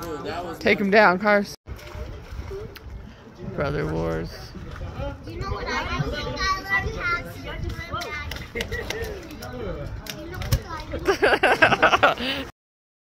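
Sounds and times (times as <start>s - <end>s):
people talking and calling out: 0.0s - 12.5s.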